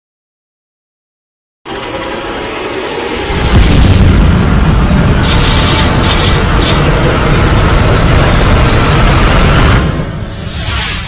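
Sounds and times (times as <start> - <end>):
rumbling boom sound effect: 3.1 - 10.6.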